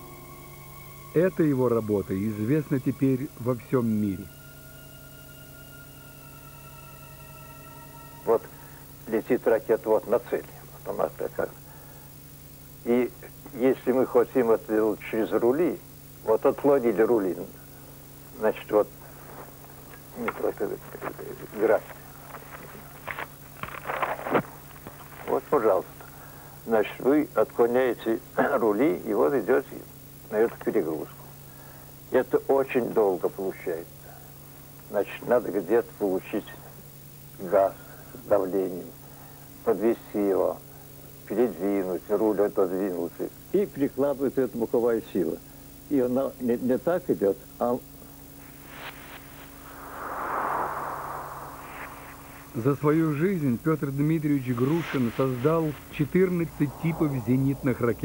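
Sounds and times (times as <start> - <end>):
steady low hum: 0.0 - 58.0
elderly man speaking: 20.1 - 21.9, 25.3 - 25.9, 52.6 - 58.0
rushing whoosh: 48.5 - 52.7, 54.9 - 58.0.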